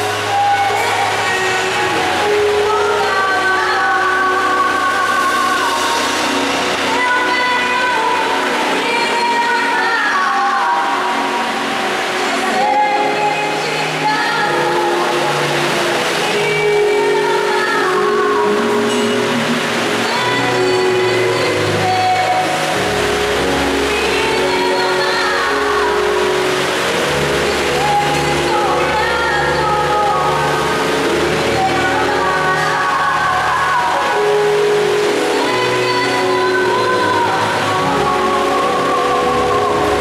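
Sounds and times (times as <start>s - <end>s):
woman singing gospel: 0.0s - 40.0s.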